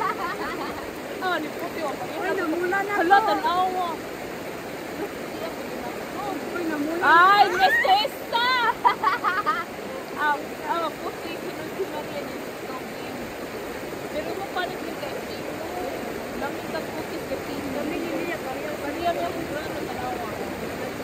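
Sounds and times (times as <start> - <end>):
river flowing over rocks: 0.0 - 21.0
voices chattering: 0.0 - 21.0.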